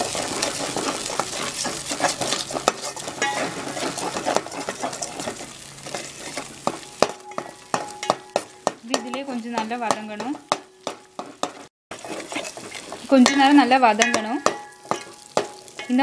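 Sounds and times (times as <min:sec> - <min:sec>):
metal spoon scraping a pan: 0:00.0 - 0:16.0
paste sizzling in oil: 0:00.0 - 0:16.0.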